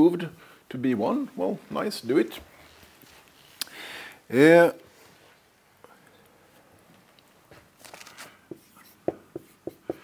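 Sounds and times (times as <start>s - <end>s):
marker scratching on whiteboard: 8.5s - 10.0s.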